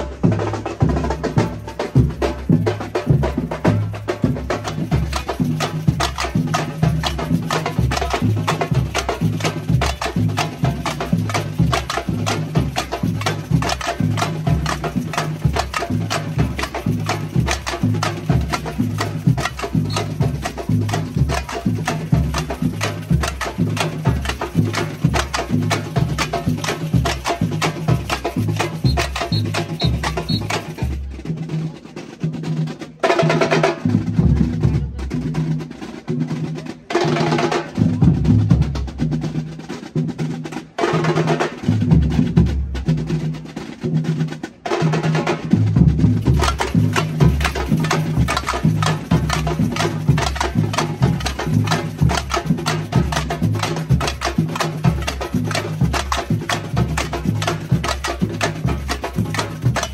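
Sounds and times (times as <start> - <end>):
samba percussion band: 0.0 - 59.9
snare drum and tamborim strokes: 3.0 - 31.1, 46.1 - 59.9.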